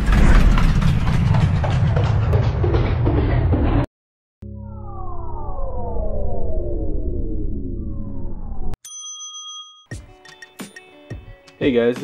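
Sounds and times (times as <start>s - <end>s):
high bell-like ding: 8.8s - 10.0s.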